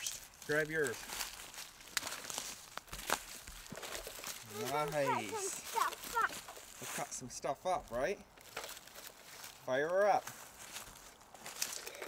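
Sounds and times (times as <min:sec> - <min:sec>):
footsteps crunching dry leaves: 0:00.0 - 0:12.0.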